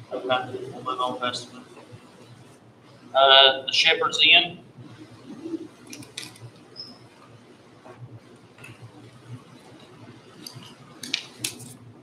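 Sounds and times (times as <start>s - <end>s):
quiet room noise: 0.0s - 12.0s.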